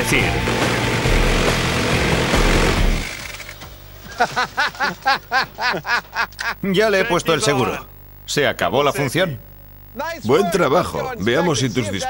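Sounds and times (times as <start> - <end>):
minigun firing: 0.0 - 3.8.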